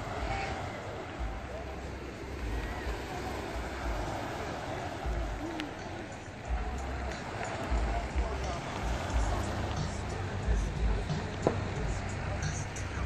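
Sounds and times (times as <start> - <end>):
faint voices: 0.0 - 13.0
surf on the shore: 0.0 - 13.0
wind gusting on microphone: 0.0 - 13.0.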